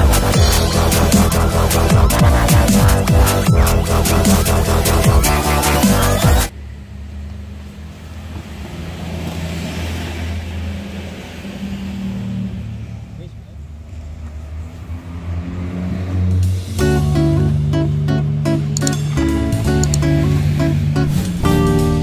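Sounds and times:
music: 0.0s - 6.5s, 16.4s - 22.0s
passing traffic: 0.0s - 22.0s
vehicle engine humming: 0.0s - 22.0s.

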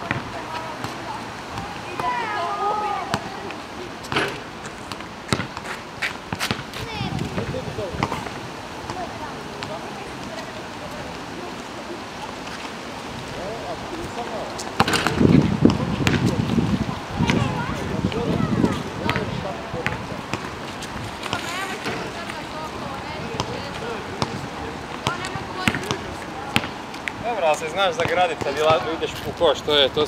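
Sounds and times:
basketball dribbling: 0.0s - 1.0s, 4.9s - 5.7s, 19.0s - 20.5s, 25.0s - 26.7s
basketball bouncing on asphalt: 0.0s - 2.3s, 3.0s - 3.5s, 4.1s - 10.4s, 14.8s - 27.1s, 28.0s - 28.9s.

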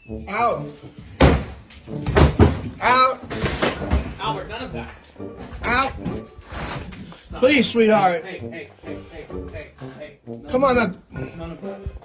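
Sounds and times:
heavy knocks and bumps: 1.2s - 2.8s.

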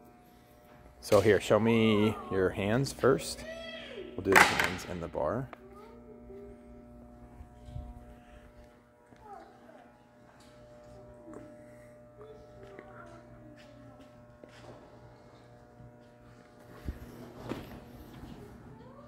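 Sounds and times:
steady machine hum: 0.0s - 19.0s.

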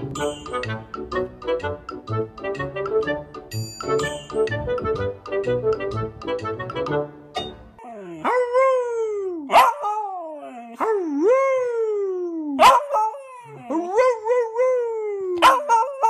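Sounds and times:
puppy howling: 7.8s - 16.0s.

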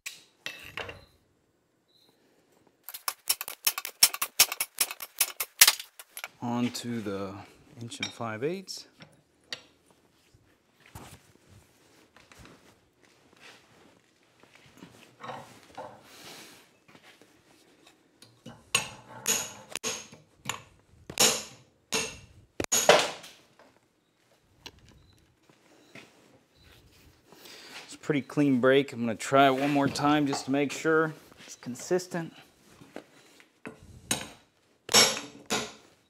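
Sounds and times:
light handling of metal: 2.8s - 6.9s
steel bar snapping: 2.9s - 6.1s.

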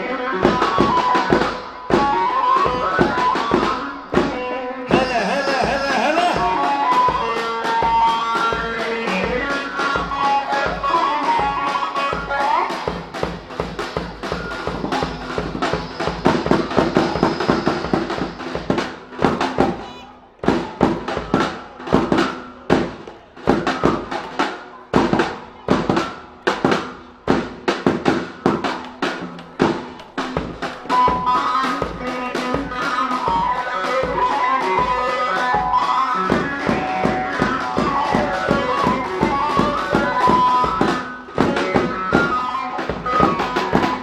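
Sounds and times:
drum kit beats: 0.0s - 44.0s.

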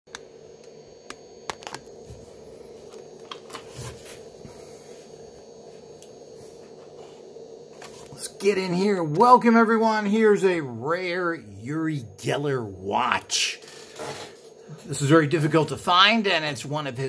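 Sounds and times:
steady low hum: 0.1s - 17.0s.

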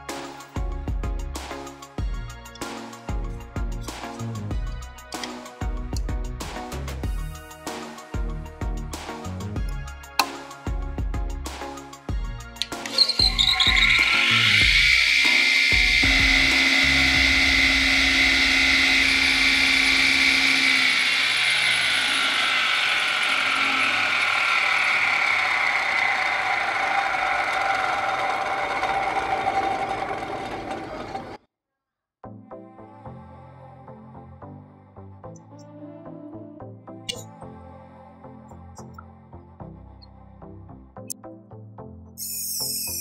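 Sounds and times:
clicks: 12.6s - 14.2s
table saw motor whining: 12.6s - 31.4s.

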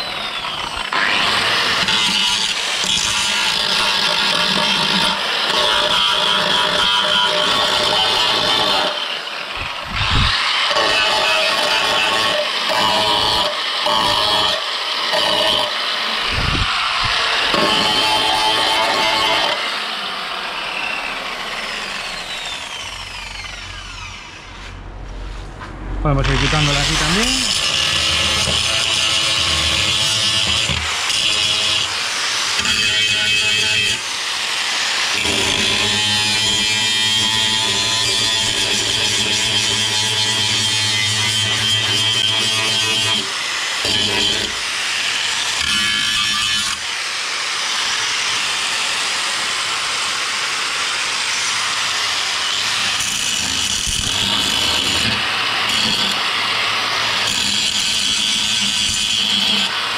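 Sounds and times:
angle grinder grinding steel: 0.0s - 24.9s, 26.1s - 59.9s.

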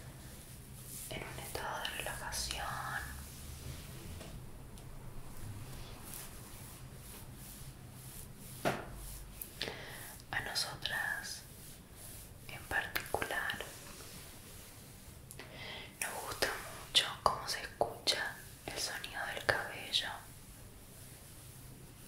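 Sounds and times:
person whispering: 1.0s - 3.4s, 10.0s - 11.5s, 12.5s - 13.9s, 15.9s - 20.4s.

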